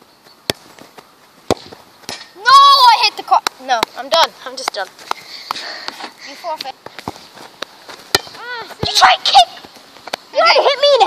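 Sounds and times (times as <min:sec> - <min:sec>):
ball hitting crossbar: 0:00.5 - 0:00.8, 0:01.5 - 0:02.5, 0:08.1 - 0:09.0
football kicked with thud: 0:01.5 - 0:02.3, 0:08.1 - 0:09.0.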